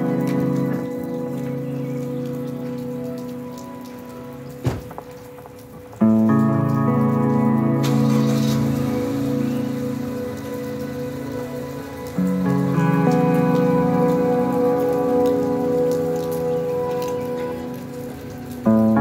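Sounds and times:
rain on wet paving: 0:00.0 - 0:19.0
slow held chords music: 0:00.0 - 0:19.0.

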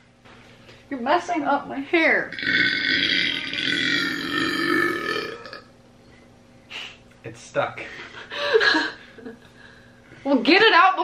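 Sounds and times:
person burping: 0:02.3 - 0:05.7.

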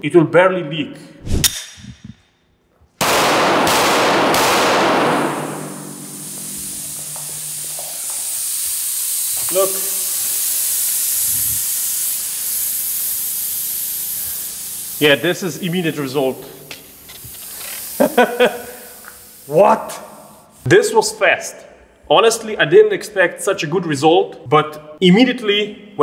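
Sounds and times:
pistol shots: 0:03.0 - 0:06.2
air hissing out of tire: 0:04.6 - 0:20.7.

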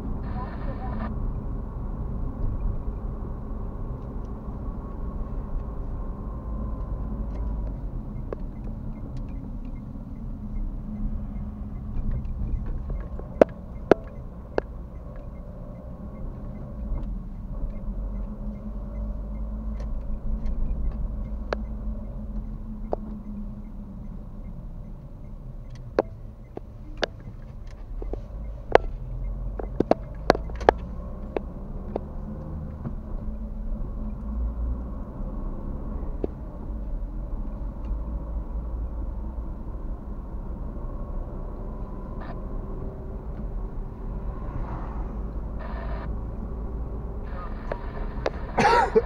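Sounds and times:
car engine and road rumble: 0:00.0 - 0:49.0
sharp clicks inside car: 0:06.8 - 0:23.4, 0:25.2 - 0:33.0.

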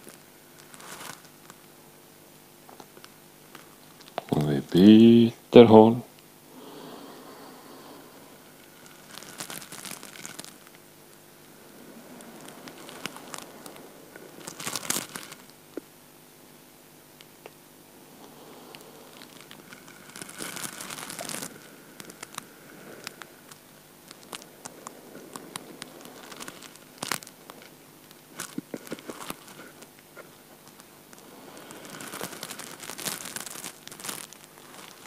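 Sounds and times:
crackly rustling of head rolling: 0:00.0 - 0:04.9, 0:07.2 - 0:35.0
faint room hum: 0:00.0 - 0:35.0.

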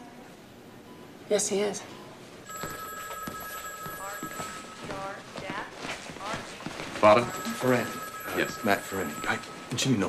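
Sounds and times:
footsteps: 0:02.5 - 0:09.7.

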